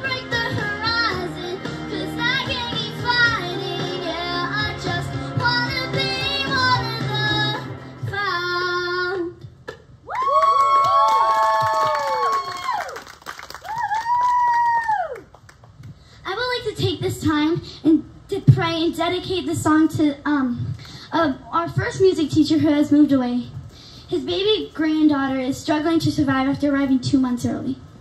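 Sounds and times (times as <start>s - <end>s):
girl singing into microphone: 0.0s - 9.6s, 16.2s - 27.8s.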